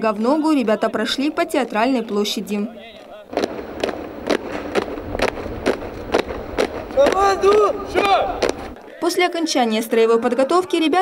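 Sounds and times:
boots marching on paving: 0:03.3 - 0:08.8.

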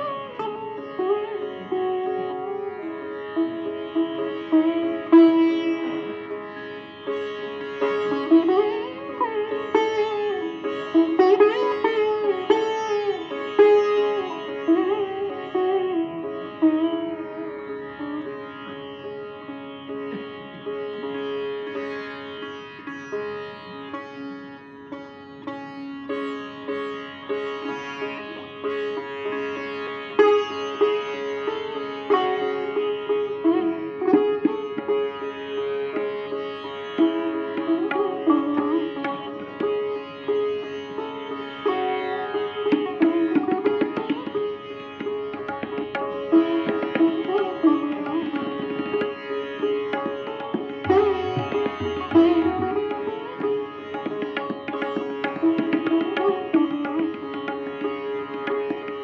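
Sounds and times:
sitar melody: 0:00.0 - 0:59.0.

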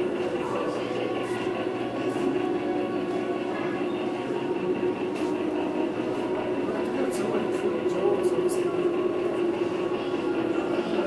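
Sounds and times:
faint voices: 0:00.0 - 0:11.0
steady low hum with held tones: 0:00.0 - 0:11.0.

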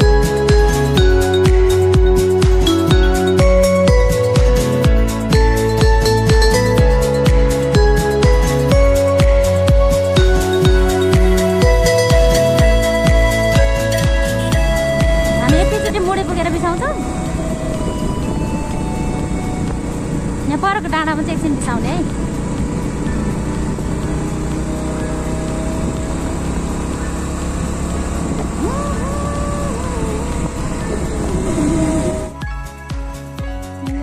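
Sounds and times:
motorcycle rumble: 0:00.0 - 0:32.4
wind on microphone: 0:14.8 - 0:20.6, 0:28.2 - 0:32.4.

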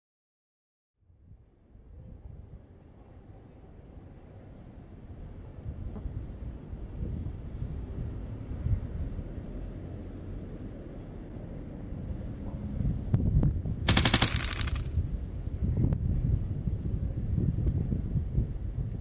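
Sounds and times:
rapid rattle of clicks: 0:13.9 - 0:15.0
wind buffeting microphone: 0:15.0 - 0:19.0.

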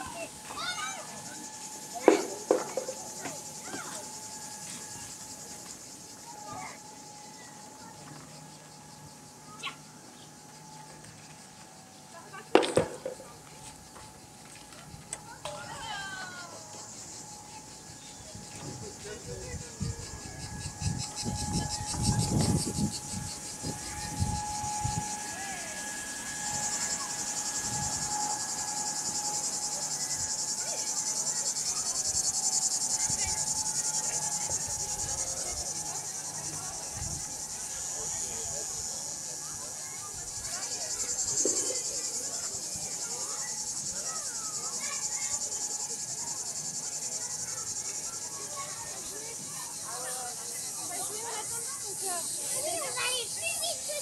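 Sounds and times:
faint steady hum: 0:00.0 - 0:49.2
cicadas droning: 0:00.0 - 0:54.0.

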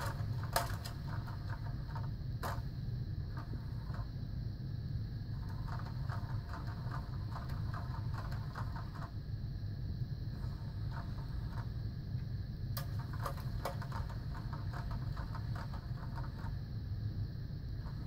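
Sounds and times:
rapid mechanical clicking: 0:00.0 - 0:04.2, 0:05.2 - 0:09.3, 0:10.3 - 0:11.8, 0:12.7 - 0:16.9, 0:17.7 - 0:18.0.

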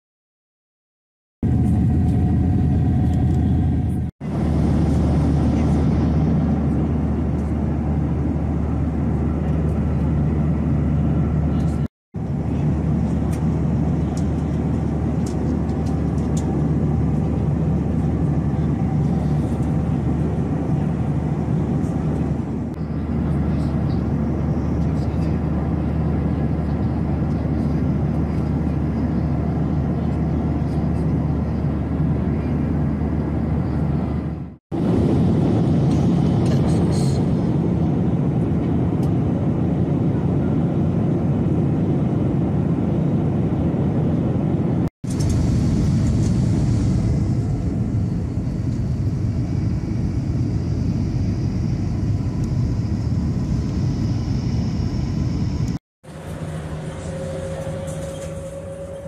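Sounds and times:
airliner cabin engine drone: 0:01.4 - 0:59.0
low hum: 0:01.4 - 0:59.0.

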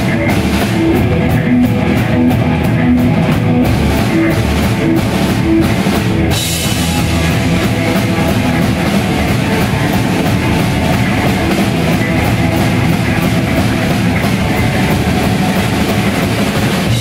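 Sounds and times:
bass guitar: 0:00.0 - 0:17.0
drum kit with cymbals: 0:00.0 - 0:17.0
electric guitar: 0:00.0 - 0:17.0.

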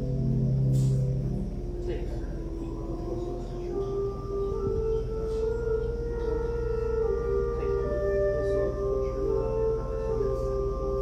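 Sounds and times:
pipe organ chords: 0:00.0 - 0:11.0.

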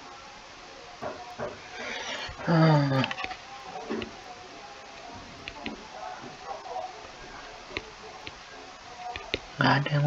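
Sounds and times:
faint voice-like sounds: 0:00.0 - 0:10.0
microphone room hiss: 0:00.0 - 0:10.0.

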